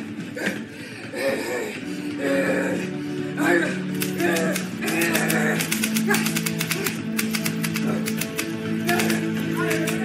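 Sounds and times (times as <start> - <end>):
background music with sustained notes: 0.0 - 10.0
manual typewriter typing rapidly: 4.0 - 10.0.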